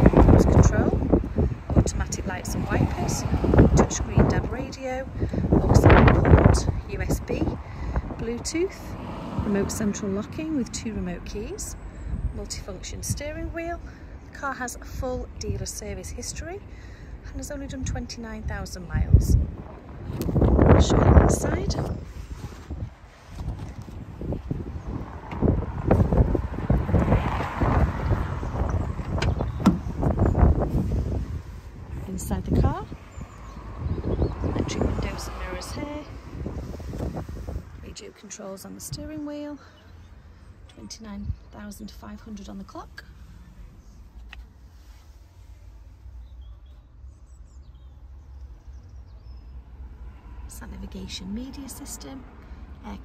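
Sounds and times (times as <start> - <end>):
wind buffeting microphone: 0.0 - 44.2
car cabin low rumble: 0.0 - 53.0
car door opening: 28.6 - 30.5.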